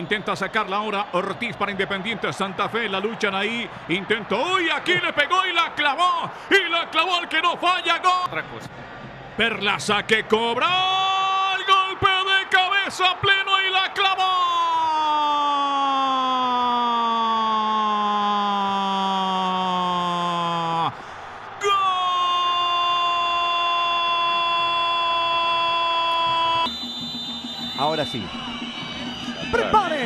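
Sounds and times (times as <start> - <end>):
excited commentary: 0.0 - 8.6, 9.4 - 26.7, 29.4 - 30.0
commentator shouting goal cry: 0.2 - 8.3, 10.6 - 20.9.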